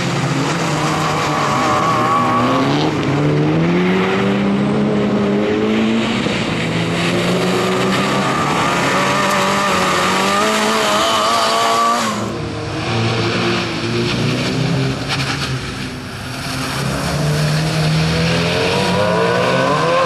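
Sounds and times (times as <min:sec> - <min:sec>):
car engine revving hard: 0:00.0 - 0:13.7, 0:16.8 - 0:20.0.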